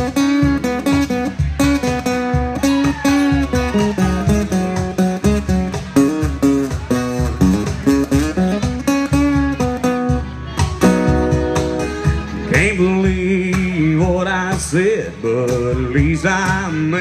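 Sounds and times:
acoustic guitars playing: 0.0 - 17.0.

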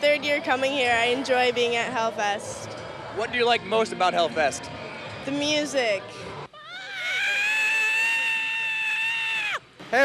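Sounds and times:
long high-pitched scream: 6.6 - 9.6.

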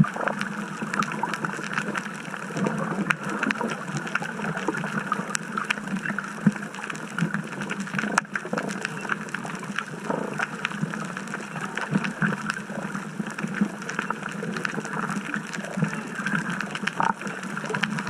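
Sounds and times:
muffled underwater noise: 0.0 - 18.0
sharp underwater clicks: 0.0 - 18.0.

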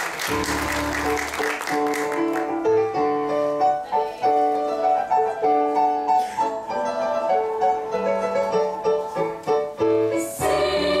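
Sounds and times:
piano accompaniment: 0.0 - 11.0
girls' choir singing: 6.5 - 11.0.

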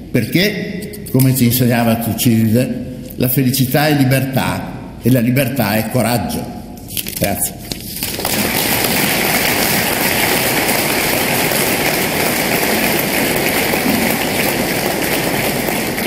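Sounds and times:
audience applauding: 8.0 - 16.0.

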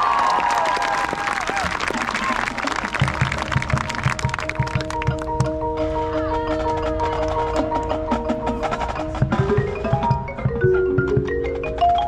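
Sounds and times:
ringing mallet percussion tones: 3.1 - 12.0.

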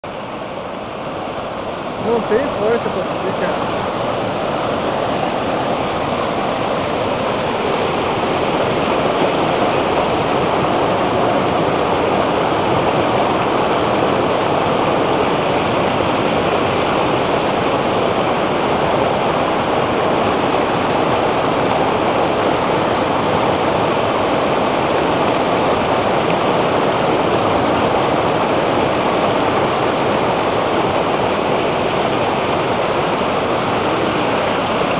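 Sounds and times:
white water rushing over boulder: 0.0 - 34.9.

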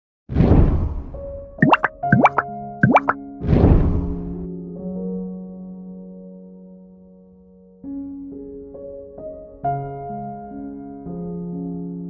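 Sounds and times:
upward-sliding bloops: 1.6 - 3.2.

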